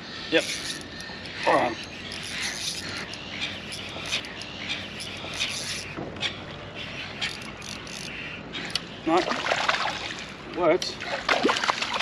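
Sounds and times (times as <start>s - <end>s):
fishing reel clicking: 0.3s - 5.9s, 7.2s - 8.8s.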